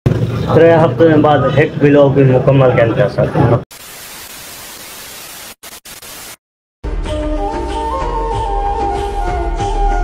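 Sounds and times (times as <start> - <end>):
television static hiss: 3.7 - 6.4.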